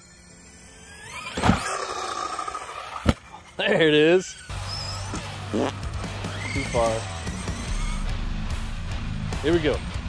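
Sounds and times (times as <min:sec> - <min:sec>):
electric motor whining: 0:00.0 - 0:09.4.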